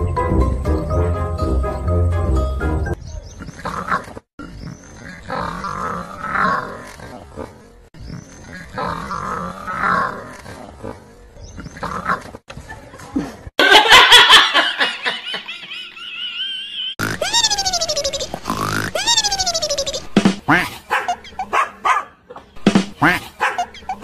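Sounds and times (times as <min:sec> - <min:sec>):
animal growling and roaring: 0:03.4 - 0:12.4
people shrieking with laughter: 0:13.7 - 0:18.4.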